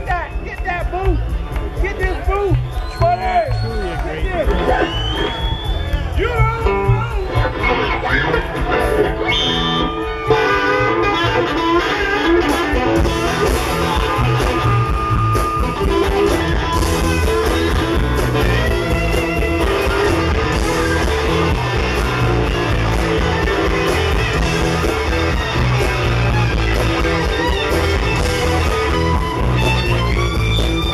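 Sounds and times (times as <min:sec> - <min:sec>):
blues band playing live: 0:00.0 - 0:30.9
electric guitar lead with bent notes: 0:04.6 - 0:30.9.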